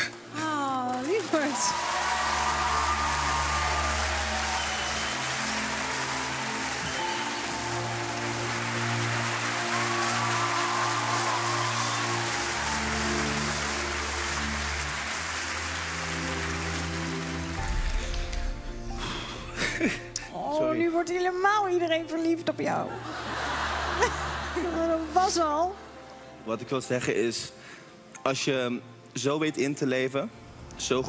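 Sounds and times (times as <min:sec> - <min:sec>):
audience applauding: 0:00.0 - 0:18.7
slow background music: 0:00.0 - 0:31.0.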